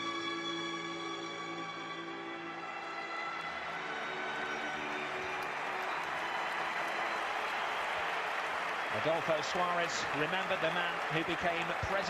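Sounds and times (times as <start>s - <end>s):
slow sustained music: 0.0s - 7.2s
stadium crowd applause: 2.6s - 12.0s.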